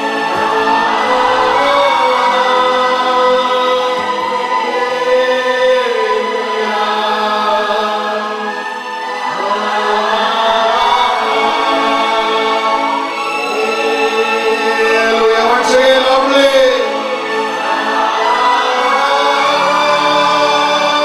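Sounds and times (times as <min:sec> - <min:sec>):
voices singing devotional song: 0:00.0 - 0:21.0.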